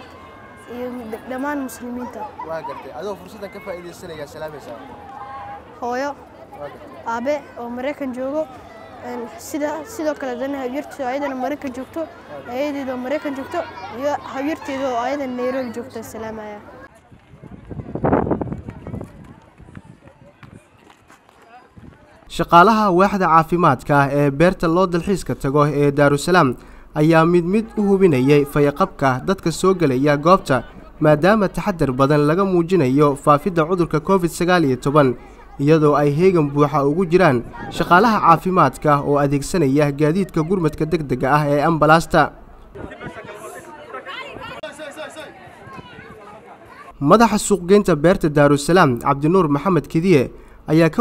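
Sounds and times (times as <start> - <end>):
faint crowd chatter: 0.0 - 51.0
footsteps on paving: 16.9 - 22.3.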